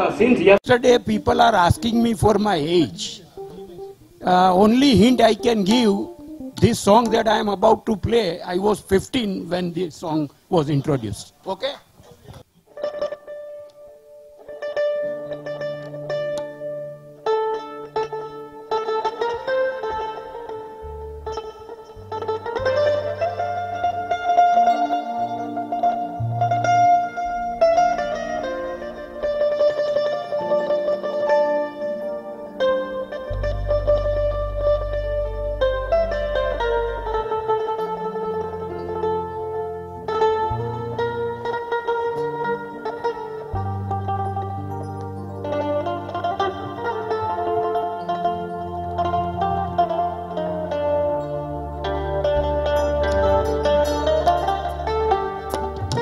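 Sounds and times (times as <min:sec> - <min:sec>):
small band playing: 0:00.7 - 0:08.3, 0:12.8 - 0:56.0
mandolin melody: 0:00.7 - 0:11.0, 0:12.6 - 0:56.0
electric bass guitar: 0:12.8 - 0:56.0.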